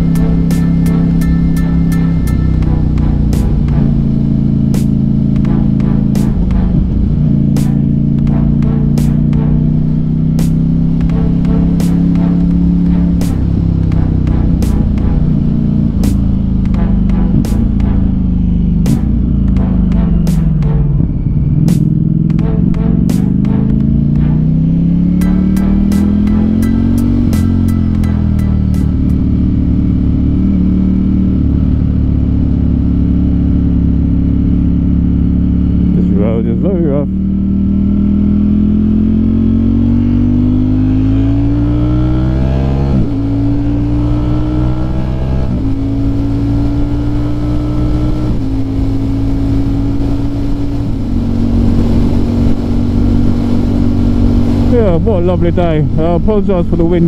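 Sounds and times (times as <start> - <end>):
motorcycle engine accelerating: 0.0 - 57.0
wind rushing over microphone: 48.0 - 57.0.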